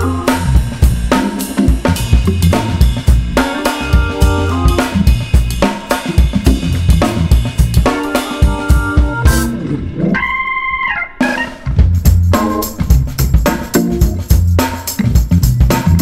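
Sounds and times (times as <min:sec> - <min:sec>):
jazz drum kit: 0:00.0 - 0:10.4, 0:11.1 - 0:16.0
keyboard chords: 0:00.0 - 0:16.0.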